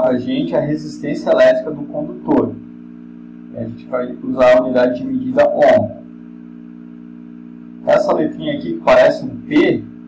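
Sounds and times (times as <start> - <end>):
man speaking: 0.0 - 2.6, 3.5 - 6.1, 7.8 - 9.9
steady low hum: 0.0 - 10.0.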